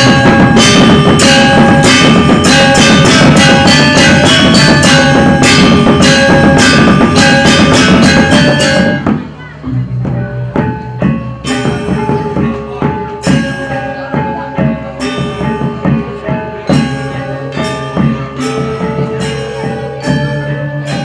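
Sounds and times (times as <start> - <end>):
drumming: 0.0 - 21.0
gamelan playing: 0.0 - 21.0.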